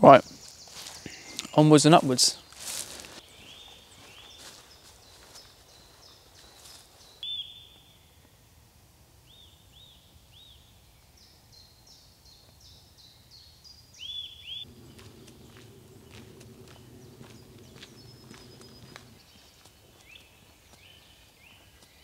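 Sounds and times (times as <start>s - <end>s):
faint outdoor ambience: 0.0s - 22.0s
footsteps on gravel: 0.5s - 7.2s, 14.7s - 22.0s
songbird whistling: 7.2s - 8.2s, 14.0s - 20.3s.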